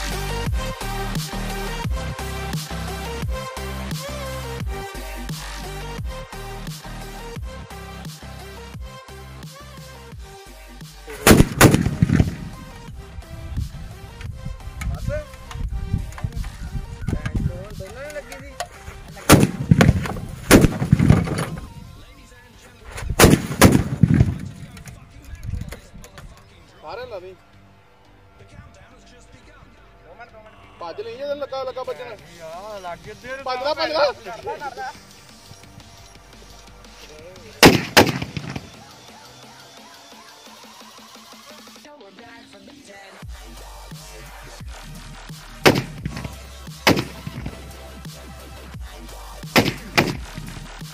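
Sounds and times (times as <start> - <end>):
firecrackers exploding: 11.2 - 12.8, 19.2 - 21.7, 23.2 - 24.6, 37.6 - 39.0, 45.7 - 47.7
small firecracker pops: 45.7 - 47.6, 49.6 - 50.6.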